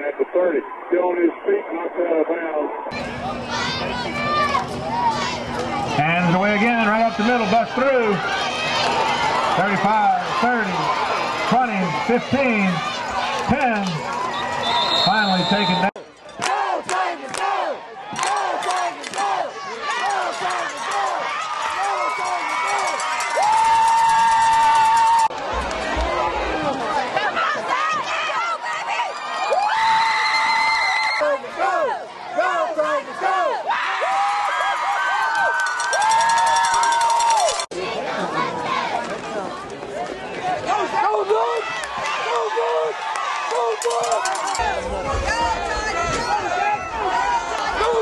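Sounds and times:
football crowd cheering and shouting: 0.0s - 48.0s.

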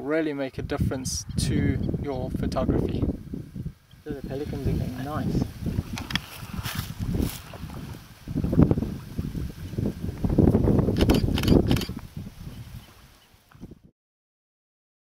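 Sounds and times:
wind buffeting microphone: 0.5s - 13.9s.

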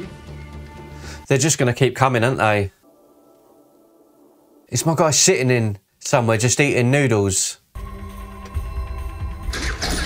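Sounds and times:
action film score: 7.8s - 10.0s.

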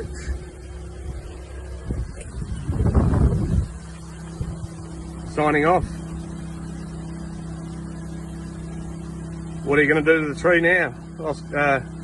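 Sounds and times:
low rumble: 0.0s - 7.5s
motor humming: 0.0s - 12.0s.

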